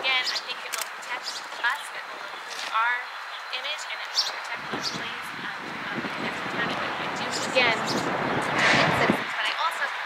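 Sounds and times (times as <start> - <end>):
woman speaking over microphones: 0.0 - 10.0.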